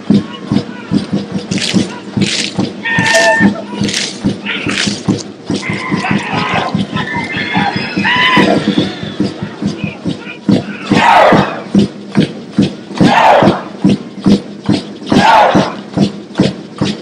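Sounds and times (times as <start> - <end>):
fast percussive beat: 0.0 - 17.0
group shouting in unison: 10.7 - 11.7, 13.0 - 13.7, 15.1 - 15.8.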